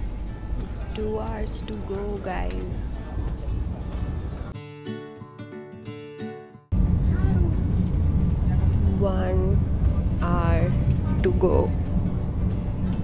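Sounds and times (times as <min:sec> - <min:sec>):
train coach rumble: 0:00.0 - 0:04.5, 0:06.8 - 0:13.0
music: 0:00.0 - 0:06.8, 0:08.6 - 0:13.0.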